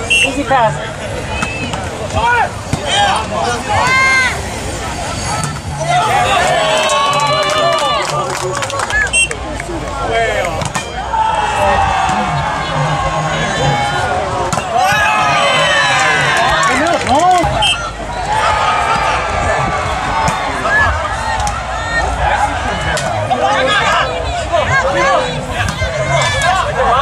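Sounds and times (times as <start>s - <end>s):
crowd talking and shouting: 0.0s - 27.0s.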